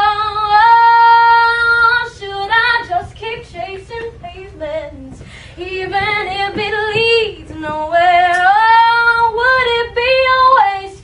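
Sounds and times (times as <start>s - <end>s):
girl singing a cappella: 0.0s - 11.0s.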